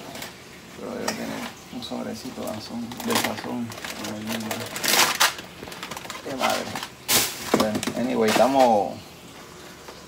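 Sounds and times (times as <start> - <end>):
packets and cans rustling and clattering: 2.4 - 9.0.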